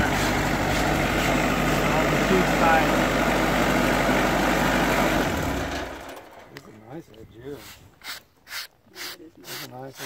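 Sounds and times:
sawmill engine idling: 0.0 - 6.5.

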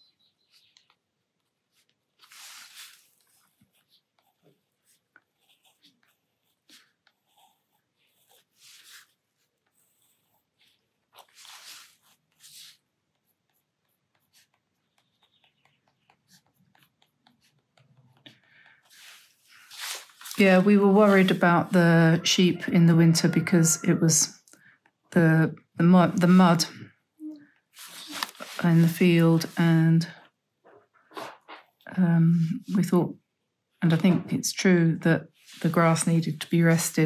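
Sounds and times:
gel pen scratching on paper: 2.3 - 22.2.

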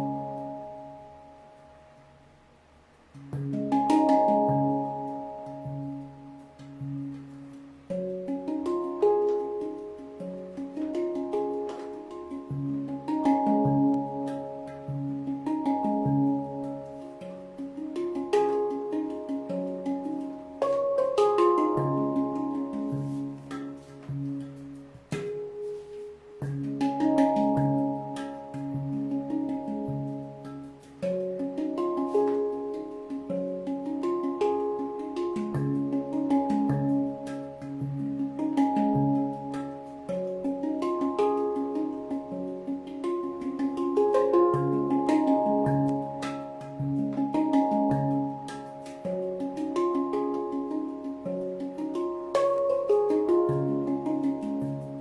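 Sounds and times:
handpan melody: 0.0 - 55.0.

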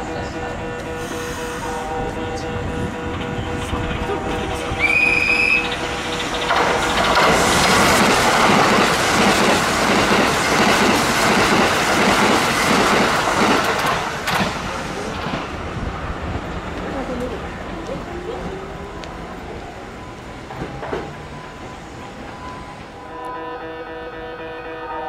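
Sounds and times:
high train horn note: 0.0 - 7.6, 23.0 - 25.0
train wheels clattering: 2.6 - 15.6.

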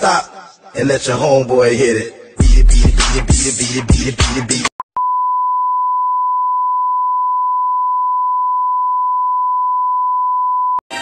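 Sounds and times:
steady test tone beep: 5.0 - 10.8.

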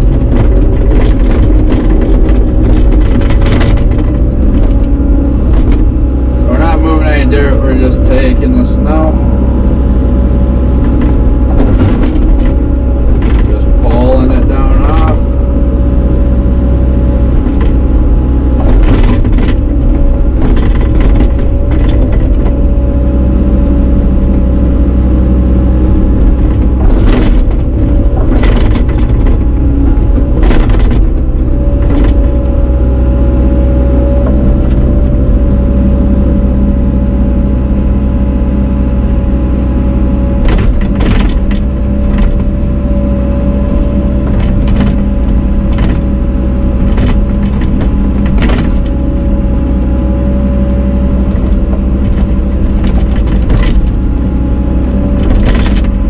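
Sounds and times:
constant engine whine: 0.0 - 56.0
excavator diesel rumble: 0.0 - 56.0.

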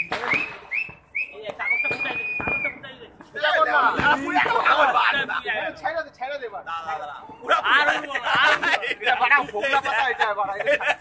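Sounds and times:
person whistling high note: 0.2 - 2.8.

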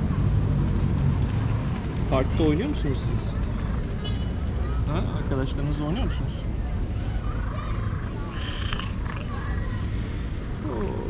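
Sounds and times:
cat meowing: 7.9 - 9.4.

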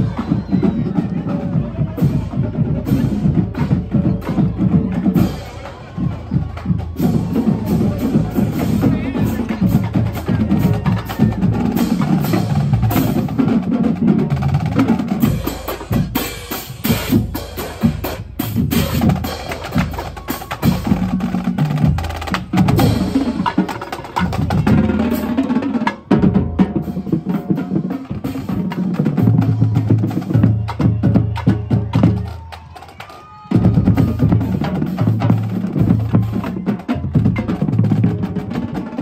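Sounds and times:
marching band playing: 0.0 - 39.0.

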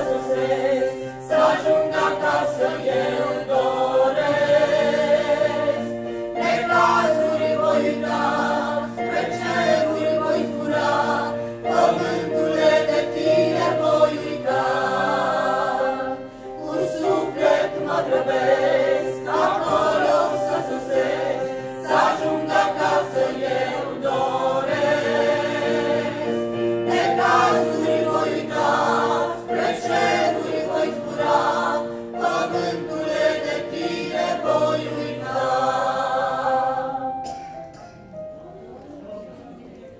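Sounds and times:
choir singing a hymn: 0.0 - 39.8.

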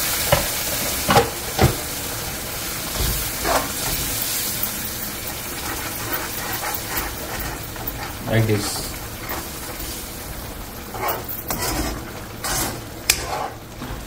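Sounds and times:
spices sizzling in a wok: 0.0 - 14.0
metal spoon scraping a pan: 5.6 - 9.5, 10.9 - 13.6.

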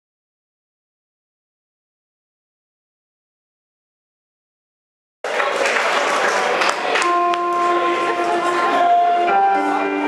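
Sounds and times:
stage and crowd noise: 5.2 - 10.0.

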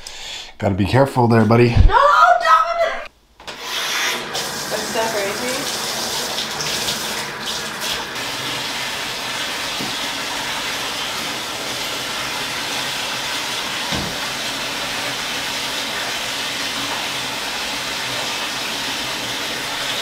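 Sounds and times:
running water filling bathtub: 3.5 - 20.0.

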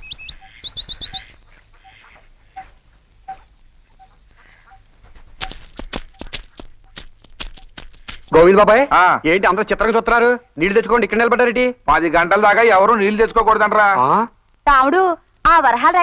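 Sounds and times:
birds chirping: 0.0 - 14.1
sharp clicks: 4.6 - 8.5.

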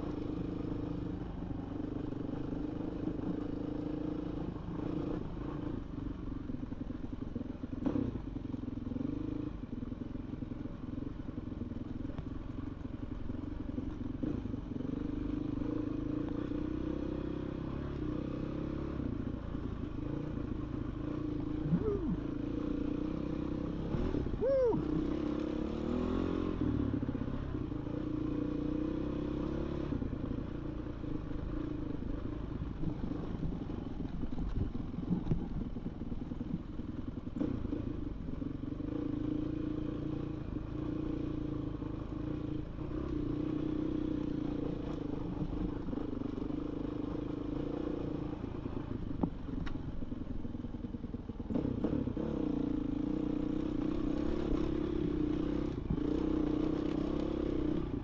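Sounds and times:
dirt bike engine running: 0.0 - 58.0.

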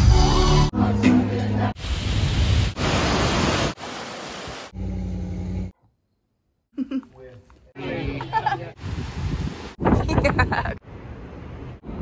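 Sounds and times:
waves on beach: 1.8 - 4.8, 8.6 - 9.9
wind on microphone: 8.8 - 10.8.

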